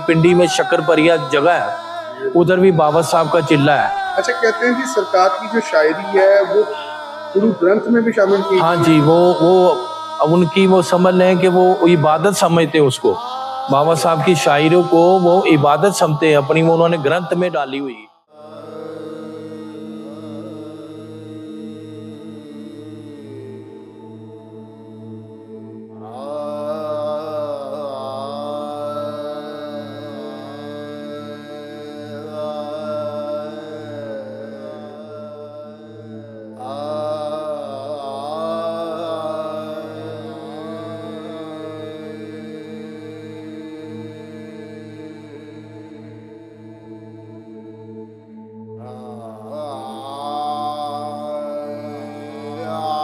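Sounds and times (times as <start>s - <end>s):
person chanting long notes: 0.0s - 46.5s, 48.8s - 53.0s.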